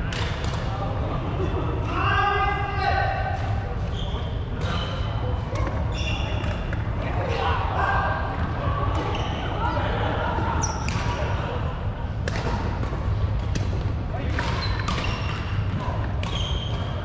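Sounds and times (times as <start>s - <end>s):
shoes squeaking on wooden court: 3.8s - 6.8s, 9.0s - 9.6s, 10.6s - 11.0s, 14.3s - 17.0s
rackets striking shuttlecock: 12.2s - 16.9s.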